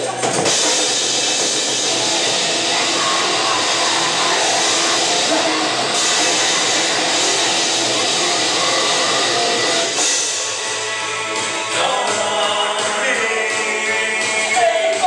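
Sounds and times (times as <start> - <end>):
distorted guitar: 0.0 - 15.0
drums: 0.0 - 15.0.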